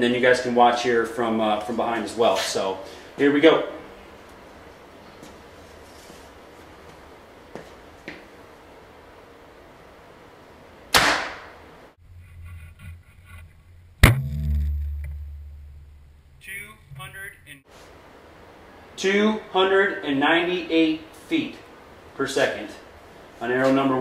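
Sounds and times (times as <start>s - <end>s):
sharp crack: 10.9s - 11.6s, 14.0s - 17.0s
low hum: 11.9s - 17.6s
bow string snap: 14.0s - 15.8s.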